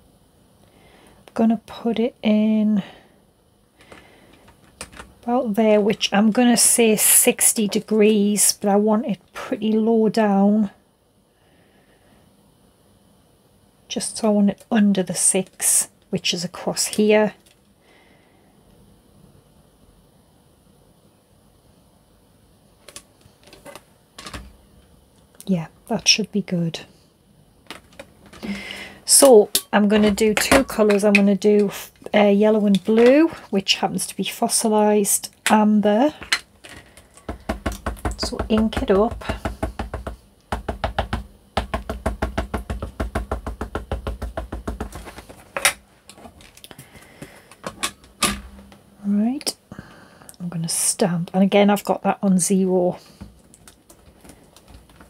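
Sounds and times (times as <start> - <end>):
ink pad tapping on stamp: 37.3 - 45.2.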